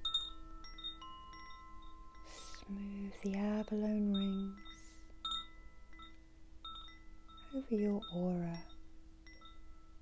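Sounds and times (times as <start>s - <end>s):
high chime-like notes: 0.0s - 10.0s
low held tone: 0.0s - 10.0s.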